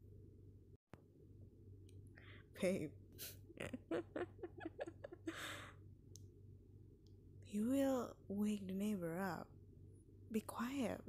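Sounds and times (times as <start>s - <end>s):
woman laughing softly: 3.2s - 5.8s.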